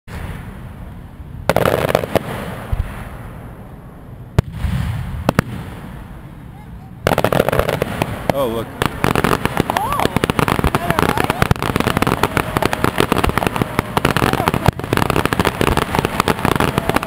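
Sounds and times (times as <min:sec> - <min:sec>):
fireworks crackling: 0:00.1 - 0:17.0
firework shells bursting: 0:07.0 - 0:17.0.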